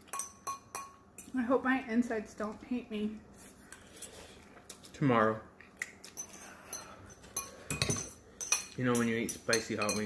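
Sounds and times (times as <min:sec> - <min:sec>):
metal forks clinking against bowls: 0:00.0 - 0:01.3, 0:06.2 - 0:10.0.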